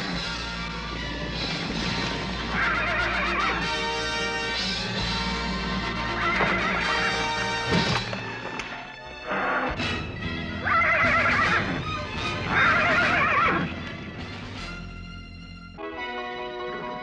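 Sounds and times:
background music: 0:00.0 - 0:17.0
horse whinnying: 0:02.5 - 0:03.8, 0:06.0 - 0:07.5, 0:09.2 - 0:09.9, 0:10.6 - 0:13.8.

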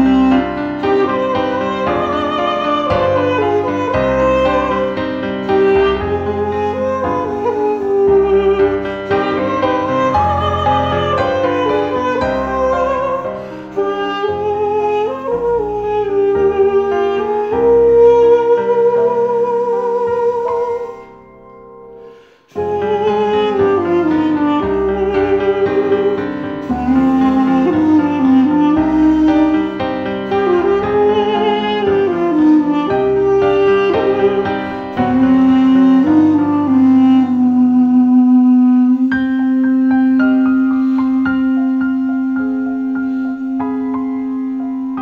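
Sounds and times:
duduk playing slow melody: 0:00.0 - 0:21.4, 0:22.2 - 0:45.0
piano chords: 0:00.0 - 0:45.0.

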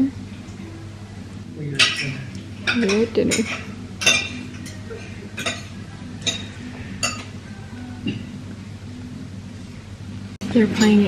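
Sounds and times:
soft background music: 0:00.0 - 0:11.0
tableware clinking: 0:01.7 - 0:08.3.

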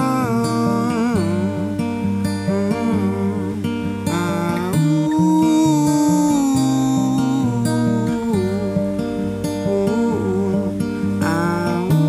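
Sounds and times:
acoustic guitar: 0:00.0 - 0:12.0
man singing wordless melody: 0:00.0 - 0:12.0.

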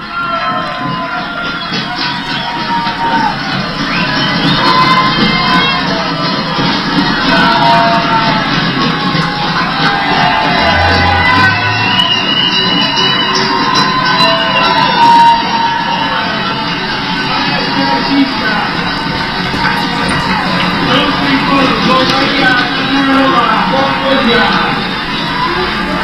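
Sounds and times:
crowd cheering and shouting: 0:00.0 - 0:26.0.

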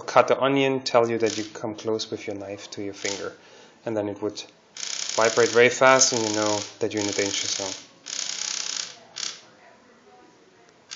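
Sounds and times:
vibration motor rattling: 0:04.8 - 0:09.4.

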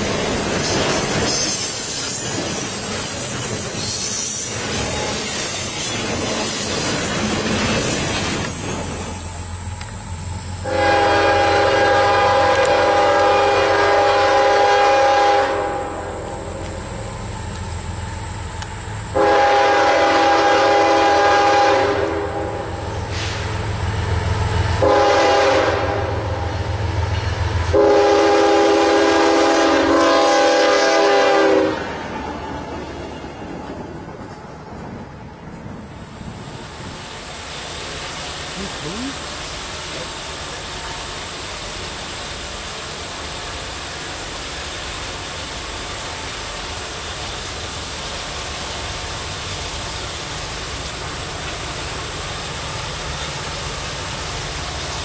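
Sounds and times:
diesel locomotive engine rumbling: 0:00.0 - 0:55.0
locomotive air horn: 0:10.6 - 0:16.5, 0:19.1 - 0:23.4, 0:24.8 - 0:26.4, 0:27.7 - 0:31.9.

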